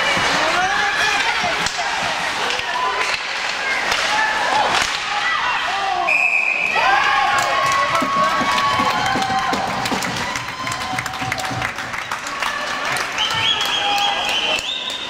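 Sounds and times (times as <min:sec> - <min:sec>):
referee's whistle blast: 0:06.1 - 0:06.8
sticks and skates knocking on ice: 0:07.6 - 0:11.7.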